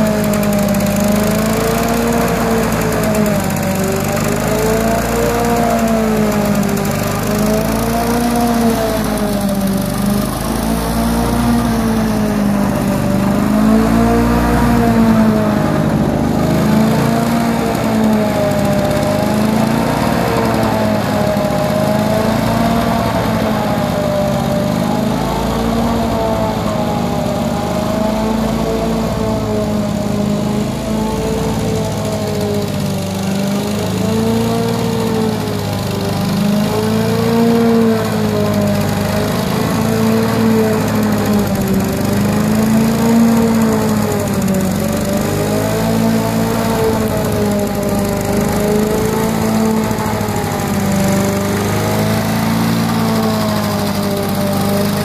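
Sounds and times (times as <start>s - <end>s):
lawn mower engine running: 0.0s - 55.0s.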